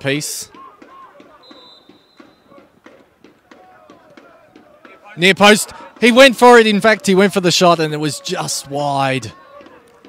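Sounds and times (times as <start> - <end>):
players and spectators shouting: 0.0 - 10.0
referee's whistle blast: 0.9 - 2.6.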